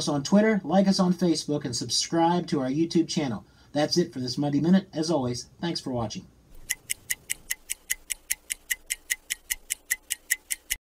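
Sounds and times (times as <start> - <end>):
rapid clock-like ticking: 6.6 - 10.8.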